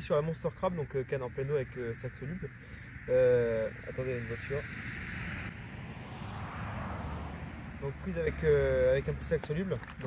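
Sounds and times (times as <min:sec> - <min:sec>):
car driving past: 0:04.0 - 0:09.2.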